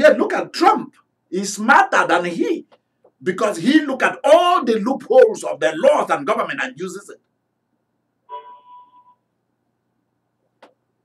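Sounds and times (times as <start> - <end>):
short electronic tone: 8.3 - 9.2.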